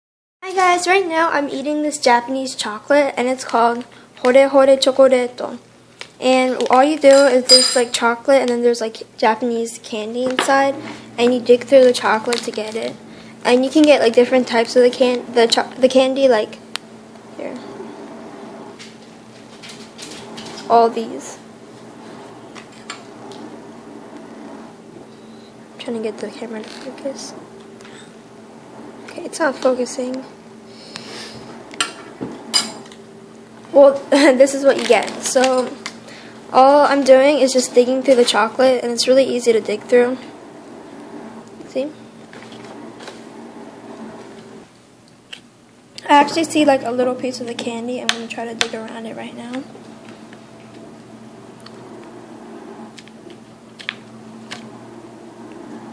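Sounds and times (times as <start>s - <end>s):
faint steady hum: 0.4s - 55.9s.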